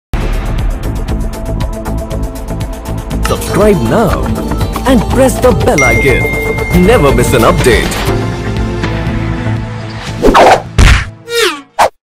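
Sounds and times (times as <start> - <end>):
cartoon whacks: 10.2 - 12.0.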